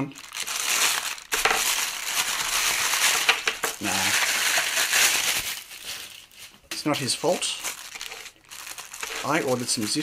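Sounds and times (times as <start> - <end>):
plastic mailer crinkling: 0.2 - 10.0.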